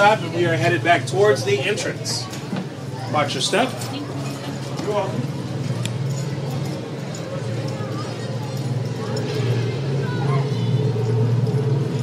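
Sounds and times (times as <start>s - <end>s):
faint voices: 0.0s - 12.0s
streetcar humming: 0.0s - 12.0s.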